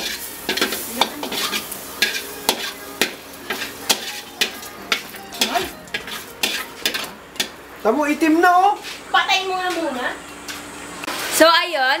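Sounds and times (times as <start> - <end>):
metal spatula scraping a wok: 0.0 - 7.5
butter sizzling in a pan: 0.0 - 7.7.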